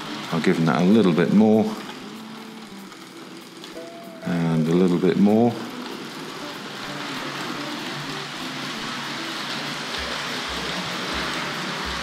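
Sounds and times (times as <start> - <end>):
model train motor hum: 0.0 - 12.0
wheels running on track: 0.0 - 12.0.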